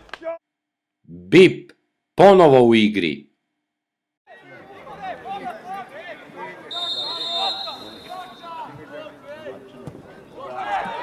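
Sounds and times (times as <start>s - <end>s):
referee whistle blast: 6.7s - 8.7s.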